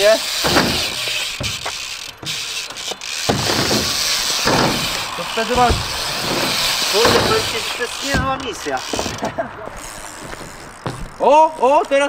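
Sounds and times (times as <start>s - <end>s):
bike tyres rolling on concrete: 0.0s - 12.0s
voice: 5.2s - 5.8s, 6.9s - 8.8s, 11.2s - 12.0s.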